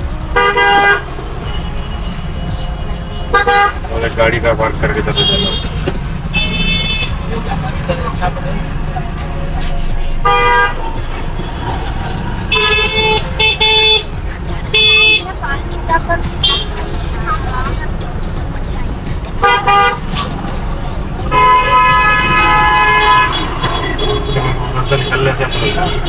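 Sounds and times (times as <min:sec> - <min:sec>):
vehicle horns honking: 0:00.0 - 0:07.5, 0:09.7 - 0:17.8, 0:19.4 - 0:20.4, 0:21.2 - 0:26.0
engine and road rumble: 0:00.0 - 0:26.0.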